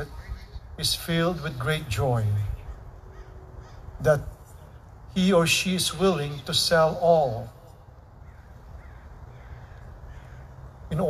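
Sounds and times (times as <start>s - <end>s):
man speaking: 0.8s - 2.7s, 4.0s - 4.4s, 5.1s - 7.6s
faint bird call: 2.6s - 4.0s, 8.2s - 10.6s.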